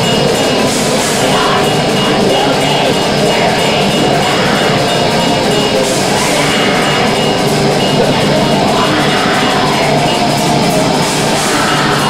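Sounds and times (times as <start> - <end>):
black metal band playing live: 0.0 - 12.0.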